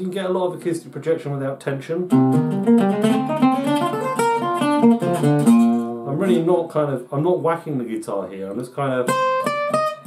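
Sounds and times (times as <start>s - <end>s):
acoustic guitar picked notes: 2.1s - 6.6s, 9.0s - 10.0s.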